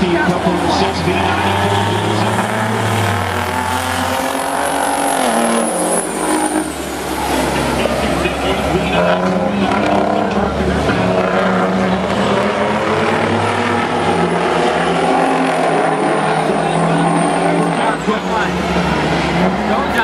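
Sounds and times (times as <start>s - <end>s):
diesel truck engines racing: 0.0s - 20.0s.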